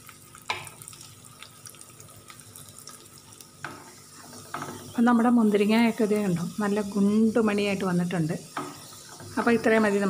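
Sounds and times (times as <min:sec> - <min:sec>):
nuts sizzling in a pan: 0:00.0 - 0:10.0
spatula stirring in a pan: 0:00.0 - 0:10.0.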